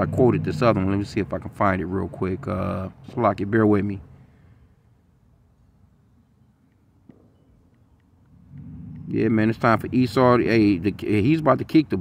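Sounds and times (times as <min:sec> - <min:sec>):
faint low rumble: 0:04.3 - 0:11.3.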